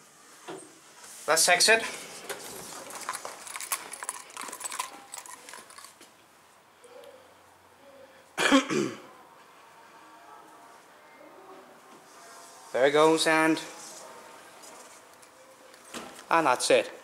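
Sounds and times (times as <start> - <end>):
footsteps on tiled floor: 1.8 - 6.2
person coughing: 8.4 - 9.1.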